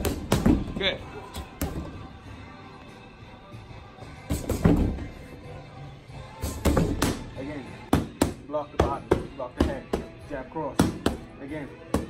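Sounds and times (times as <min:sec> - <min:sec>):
punches thudding on punching bag: 0:00.0 - 0:00.8, 0:04.3 - 0:05.1, 0:06.4 - 0:07.3
background music: 0:00.0 - 0:12.0.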